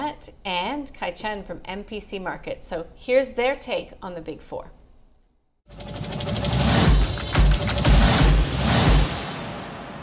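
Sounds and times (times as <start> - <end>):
transition music: 5.7 - 10.0
heavy bass hits: 5.8 - 10.0.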